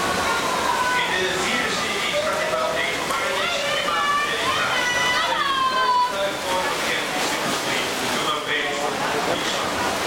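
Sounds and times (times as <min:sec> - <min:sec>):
spectators shouting: 0:00.0 - 0:01.2, 0:02.2 - 0:06.4
swimmers splashing: 0:00.0 - 0:10.0.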